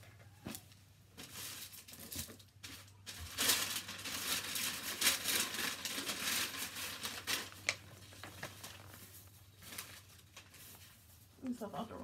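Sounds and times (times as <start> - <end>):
paper packaging rustling and crinkling: 0.2 - 12.0.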